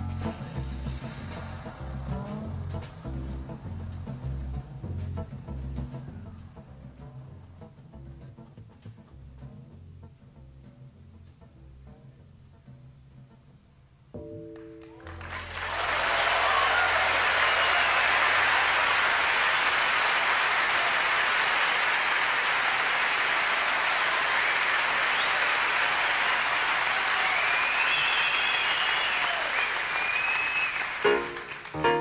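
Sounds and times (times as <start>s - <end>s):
audience applauding: 14.6s - 32.0s
whistles from audience: 15.3s - 31.7s.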